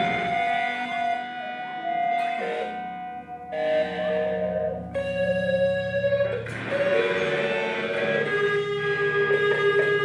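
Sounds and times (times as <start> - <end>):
electric guitars sustained notes: 0.0 - 10.0.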